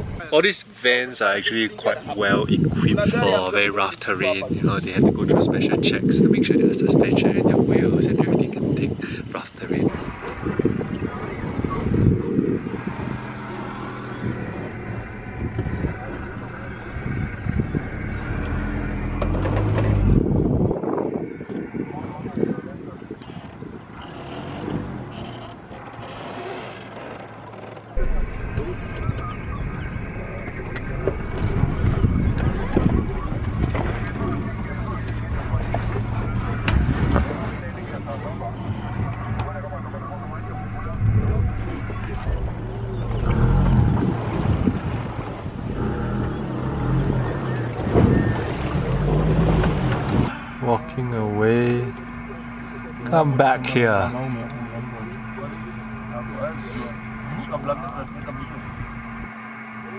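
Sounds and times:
vehicle engine at low speed: 0:00.0 - 0:59.9.

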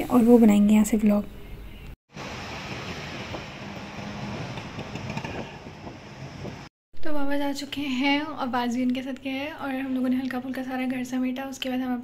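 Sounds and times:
road and traffic noise: 0:02.2 - 0:06.7.

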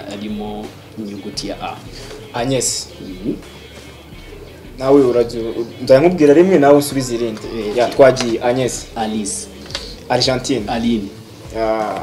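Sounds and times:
man speaking: 0:00.0 - 0:03.5, 0:04.8 - 0:12.0.

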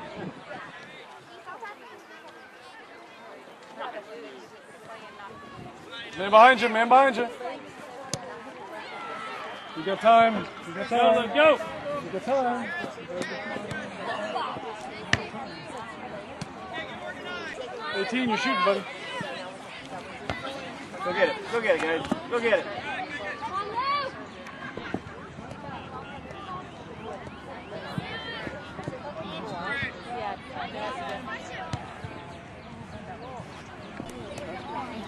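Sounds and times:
players and spectators shouting: 0:08.4 - 0:24.9, 0:25.7 - 0:30.0.

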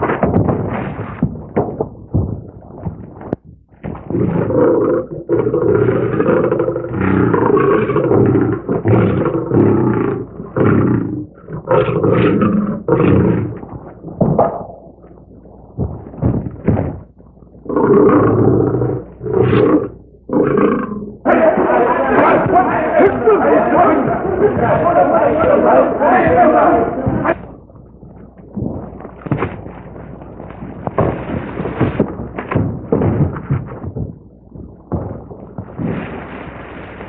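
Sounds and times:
animal roars and growls: 0:03.9 - 0:15.0, 0:17.6 - 0:27.7.

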